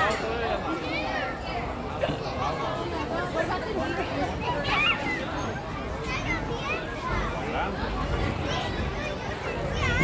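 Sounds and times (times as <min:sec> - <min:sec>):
crowd chatter: 0:00.0 - 0:10.0
children squealing and calling: 0:04.1 - 0:07.5.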